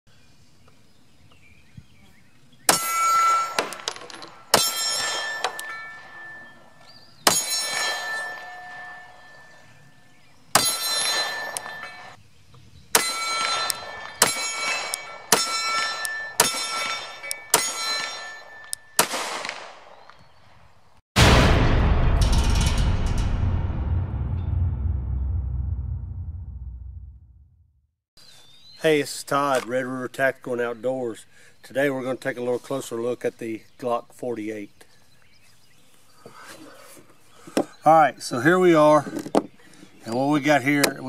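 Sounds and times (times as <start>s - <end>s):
steel target ringing: 2.7s - 12.2s, 13.0s - 19.2s, 21.2s - 26.3s
pistol shots: 13.0s - 20.1s
loud intro music: 21.2s - 27.7s.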